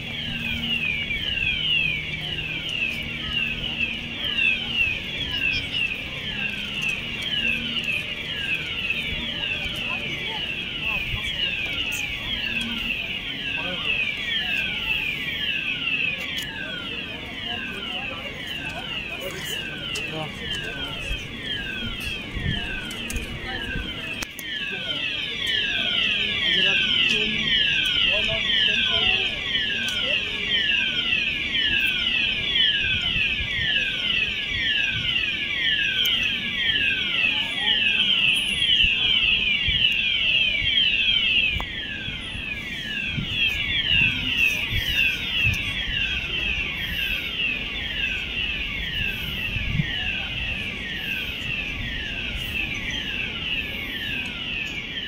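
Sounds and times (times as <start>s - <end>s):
fire alarm falling sweep: 0.0s - 55.0s.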